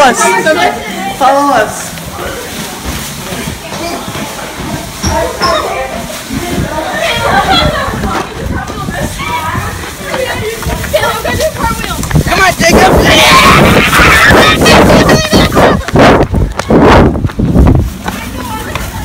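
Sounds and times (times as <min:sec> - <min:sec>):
chatter of young voices: 0:00.0 - 0:19.0.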